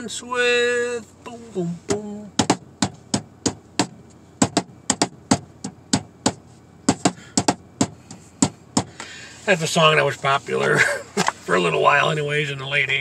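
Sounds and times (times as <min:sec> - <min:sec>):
sharp percussive taps: 0:01.9 - 0:09.0.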